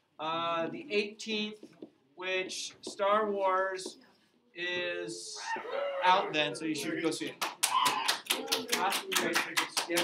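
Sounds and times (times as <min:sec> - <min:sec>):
people clapping: 0:07.1 - 0:10.0.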